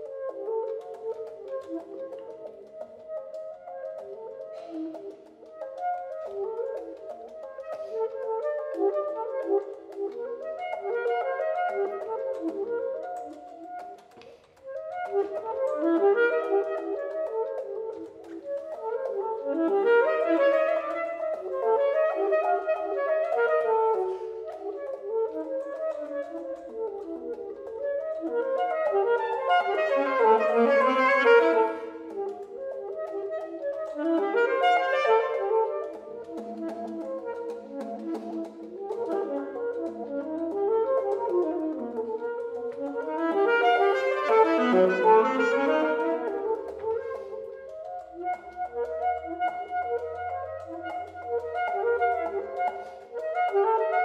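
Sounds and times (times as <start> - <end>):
saxophone playing fast runs: 15.0 - 18.0, 18.8 - 25.2, 28.3 - 47.5.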